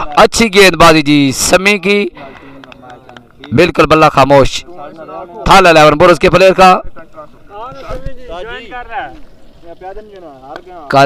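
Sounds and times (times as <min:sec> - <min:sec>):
commentary: 0:00.0 - 0:11.0
men talking in background: 0:00.0 - 0:11.0.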